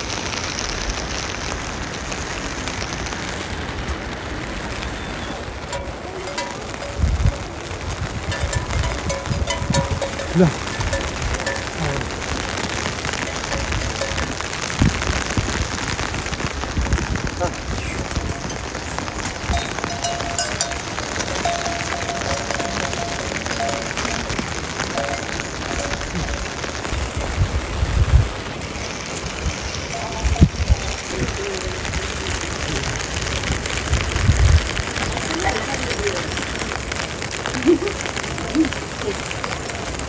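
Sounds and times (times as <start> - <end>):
steady rain: 0.0 - 40.0
low thumps: 8.3 - 11.9.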